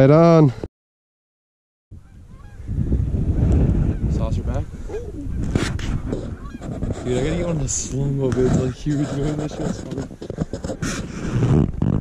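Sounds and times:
wind rumbling on microphone: 1.9s - 12.0s
faint bird calls: 2.0s - 2.8s.

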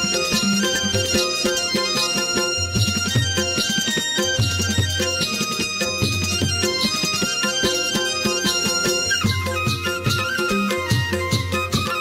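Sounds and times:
fast percussion beat: 0.0s - 12.0s
folk dance music: 0.0s - 12.0s
held melody notes: 0.0s - 12.0s.

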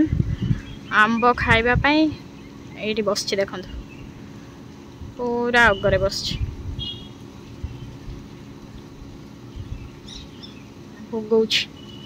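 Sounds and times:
wind buffeting microphone: 0.0s - 2.3s, 4.9s - 10.3s
faint bird chirps: 6.8s - 8.0s, 11.7s - 12.0s.

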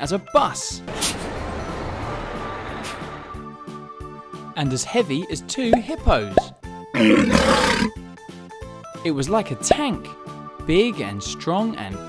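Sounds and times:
background music: 0.0s - 12.0s
dinosaur roar sound effect: 7.0s - 8.0s.

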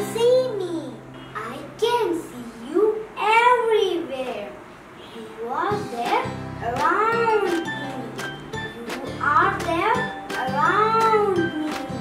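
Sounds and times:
backing music with steady beat: 5.7s - 12.0s.

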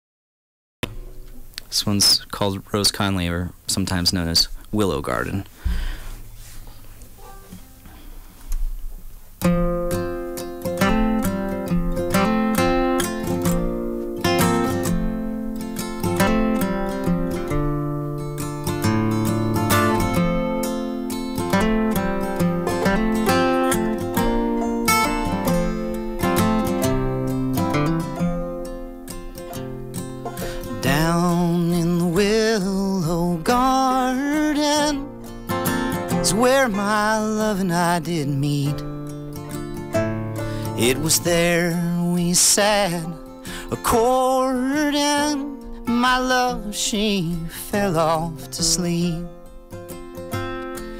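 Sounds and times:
acoustic guitar: 0.8s - 50.9s
banjo: 9.5s - 46.8s
man singing: 30.4s - 35.1s, 36.0s - 38.9s, 40.6s - 49.4s.

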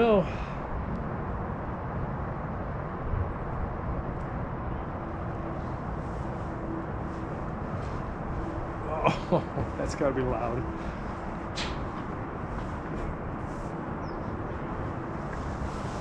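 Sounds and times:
wind noise on microphone: 0.0s - 16.0s.

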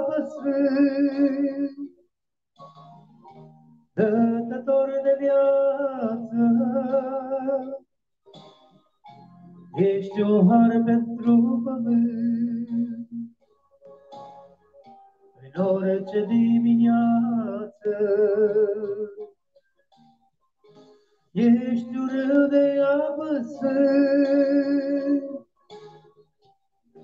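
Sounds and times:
man singing long held notes: 0.0s - 1.9s, 15.4s - 19.2s, 21.4s - 25.4s.

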